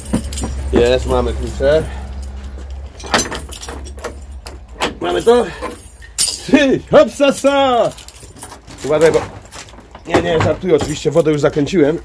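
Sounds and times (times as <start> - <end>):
keys jangling against padlock: 0.0 - 11.6.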